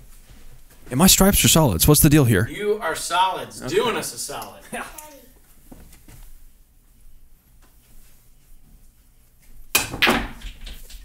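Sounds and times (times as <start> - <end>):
man exclaiming: 0.9 - 2.5.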